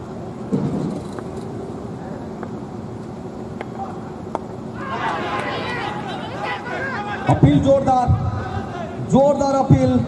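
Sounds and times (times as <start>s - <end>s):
steady low hum: 0.0s - 10.0s
players shouting an appeal: 4.8s - 9.7s.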